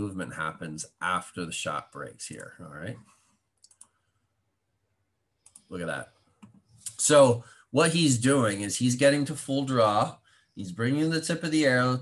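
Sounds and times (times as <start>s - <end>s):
faint computer clicks: 3.6s - 4.0s, 5.4s - 5.8s.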